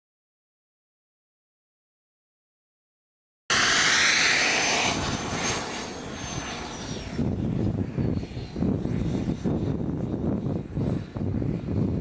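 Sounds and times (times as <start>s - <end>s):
jet engine whine and hiss: 3.5s - 12.0s.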